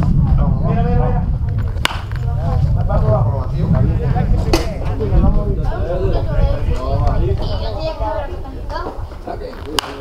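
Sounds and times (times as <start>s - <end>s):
wind rumble on microphone: 0.0s - 9.8s
voices talking: 0.1s - 10.0s
baseball bat cracking ball: 1.8s - 2.3s, 9.6s - 10.0s.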